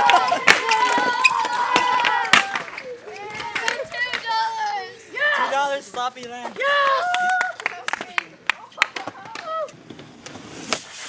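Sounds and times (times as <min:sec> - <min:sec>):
voices calling out: 0:00.0 - 0:09.7.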